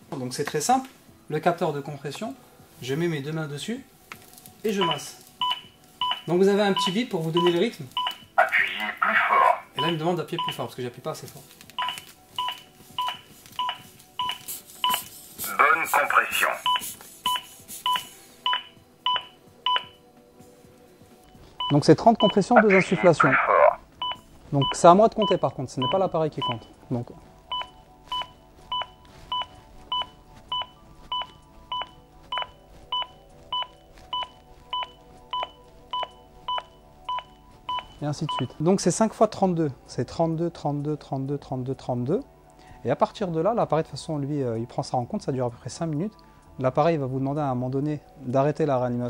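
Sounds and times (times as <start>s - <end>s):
two-tone metronome beeps: 4.8s - 8.4s, 9.8s - 10.6s, 11.8s - 15.0s, 16.6s - 20.0s, 24.0s - 26.8s, 27.5s - 38.6s.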